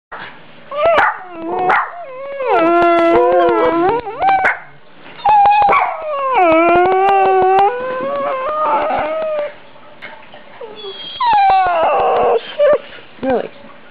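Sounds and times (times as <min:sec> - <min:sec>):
dog howling: 0:00.7 - 0:04.6, 0:05.3 - 0:09.6, 0:10.6 - 0:12.8
dog yelping: 0:00.7 - 0:09.6, 0:10.6 - 0:12.8.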